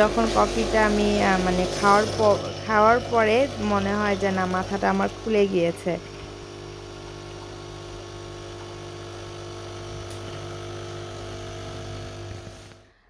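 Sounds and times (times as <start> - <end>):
coffee streaming into mug: 0.0 - 12.8
coffee machine pump humming: 0.0 - 13.0.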